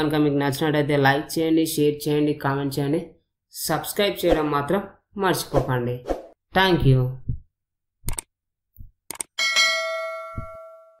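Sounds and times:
mouse clicks: 8.1 - 8.3, 9.1 - 9.3
bright bell ding: 9.4 - 11.0
soft low knock: 10.3 - 10.6.

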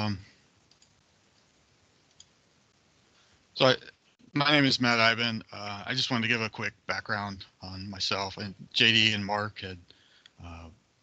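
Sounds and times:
man speaking: 0.0 - 0.3, 3.6 - 10.7.

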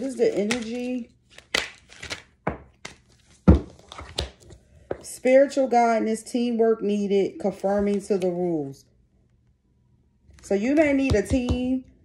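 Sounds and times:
cards knocking and thunking: 0.0 - 5.1, 10.4 - 11.8.

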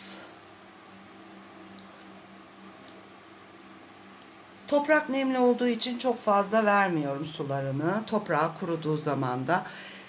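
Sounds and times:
faint water trickle onto soil: 1.6 - 3.0.

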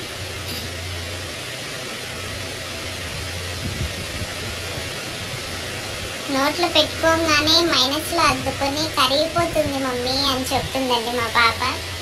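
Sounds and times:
fan hiss and hum: 0.0 - 12.0.

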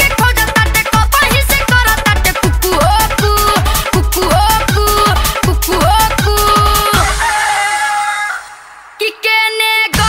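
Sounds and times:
electronic dance music: 0.0 - 10.0.

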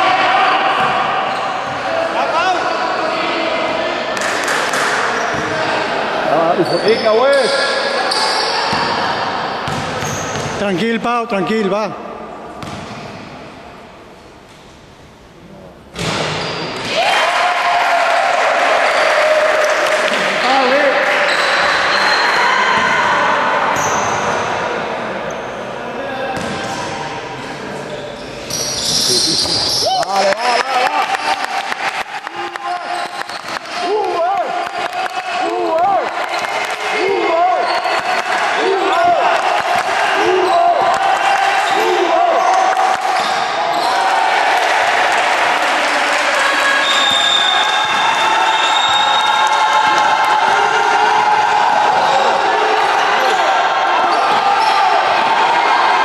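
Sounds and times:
sneakers squeaking on floor: 6.4 - 9.0, 9.6 - 10.6, 12.6 - 13.4, 16.0 - 16.9, 21.2 - 22.9, 23.7 - 24.5, 27.8 - 30.1, 40.3 - 40.8, 42.4 - 44.0, 46.8 - 49.5
basketball bouncing: 9.6 - 10.6, 12.6 - 13.1.

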